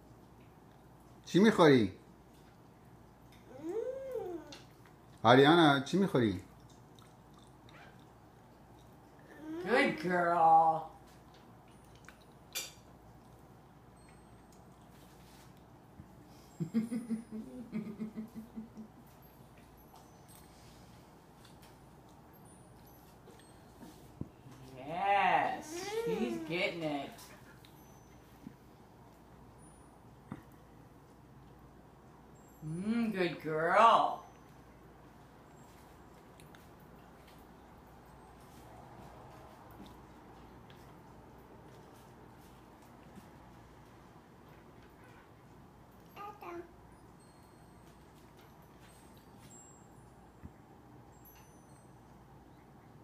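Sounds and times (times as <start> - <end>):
toddler vocalizing: 3.4 - 4.7, 9.2 - 9.7, 25.7 - 26.6.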